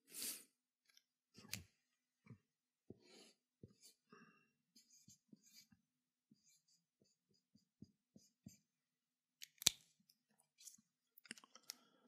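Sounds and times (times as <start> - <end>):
pen tapping while writing: 5.0 - 8.6.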